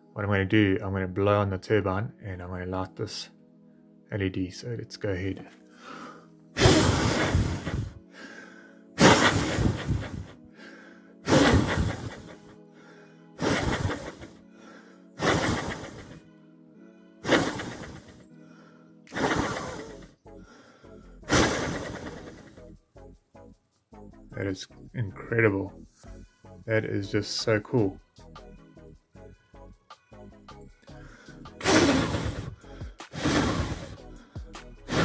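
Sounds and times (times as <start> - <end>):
faint background music: 0.0 - 35.0
breath gusts on microphone: 5.8 - 12.4, 13.4 - 16.2, 31.1 - 34.0.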